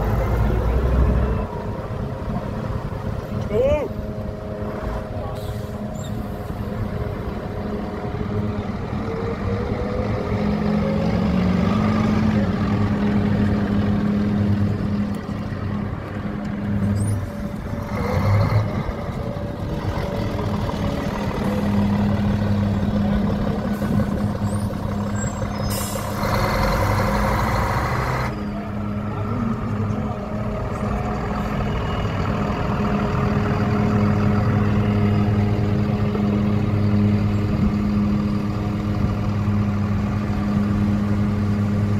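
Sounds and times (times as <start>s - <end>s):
bus diesel engine droning: 0.0s - 41.9s.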